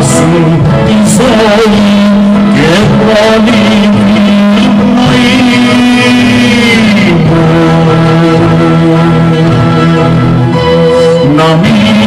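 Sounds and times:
man singing long notes: 0.0 - 12.0.

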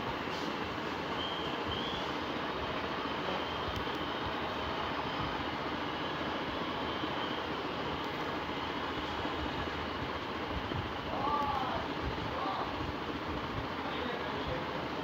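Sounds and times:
steady outdoor rushing noise: 0.0 - 15.0.

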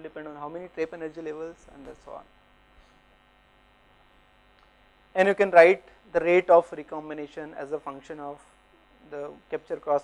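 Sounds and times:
person speaking: 0.0 - 2.3
faint electrical mains hum: 0.0 - 10.0.

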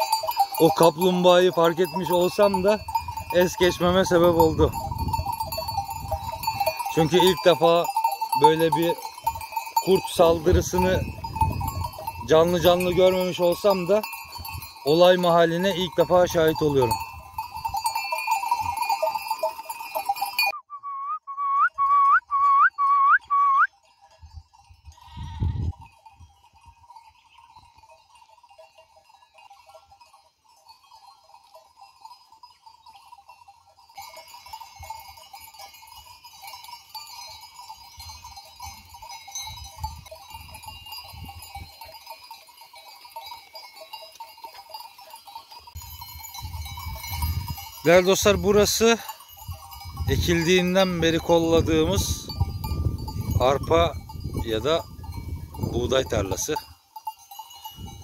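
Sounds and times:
sheep bells ringing: 0.0 - 58.0.

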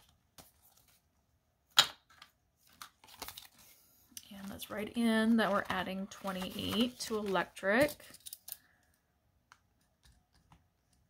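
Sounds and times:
paper rustling: 2.6 - 8.5.

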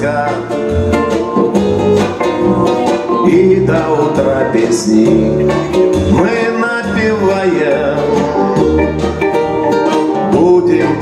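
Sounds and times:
nylon-string guitar strumming: 0.0 - 11.0.

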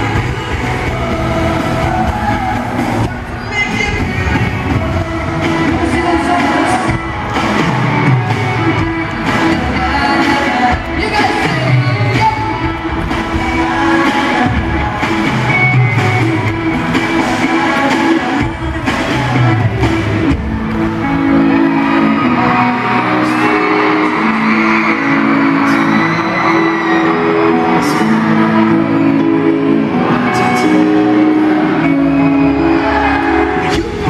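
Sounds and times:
drum beat: 0.0 - 21.0
live pop band over pa: 0.0 - 34.0
person singing: 0.0 - 34.0.

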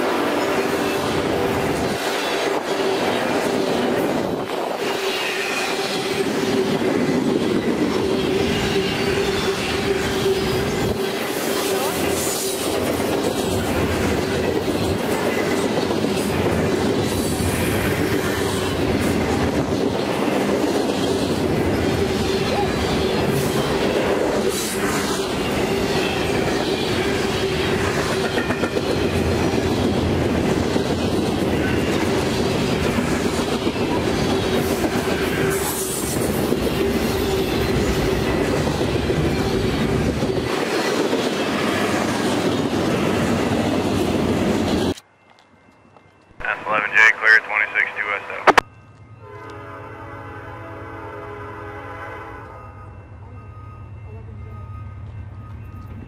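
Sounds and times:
freight train wheels rumbling: 0.0 - 56.0.

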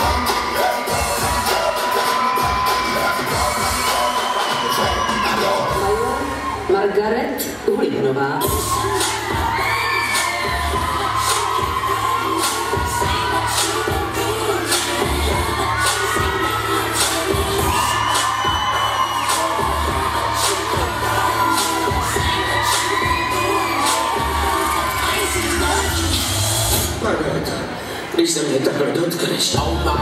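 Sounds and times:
dance music with heavy beat: 0.0 - 28.1, 29.2 - 30.0
crowd shouting and cheering: 0.0 - 30.0.

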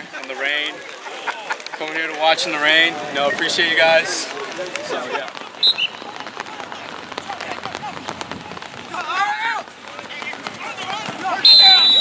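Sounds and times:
rain pattering: 0.0 - 12.0.

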